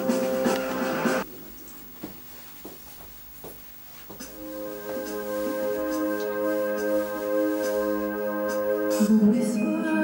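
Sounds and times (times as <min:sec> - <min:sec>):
karaoke backing music: 0:00.0 - 0:01.2, 0:04.3 - 0:10.0.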